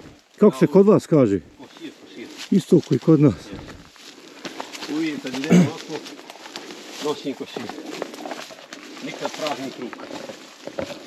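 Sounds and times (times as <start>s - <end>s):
footsteps crunching through dry grass: 1.5s - 11.0s.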